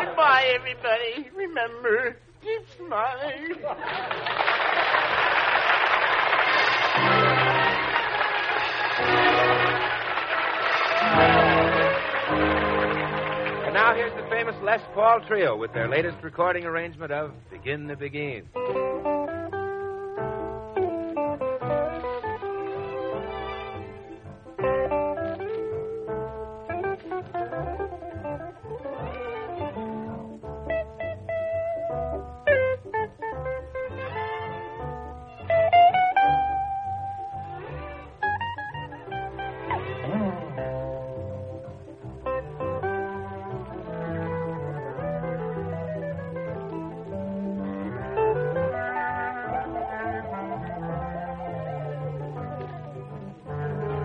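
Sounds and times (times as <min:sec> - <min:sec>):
guitar trio playing: 0:05.2 - 0:54.0
lead guitar picking melody: 0:07.0 - 0:08.0, 0:09.0 - 0:10.1, 0:11.0 - 0:17.7, 0:18.4 - 0:54.0.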